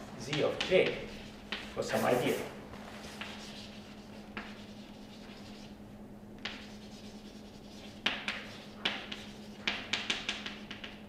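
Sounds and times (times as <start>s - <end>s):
steady low hum: 0.0s - 11.0s
chalk scratching on blackboard: 0.4s - 5.8s, 6.4s - 11.0s.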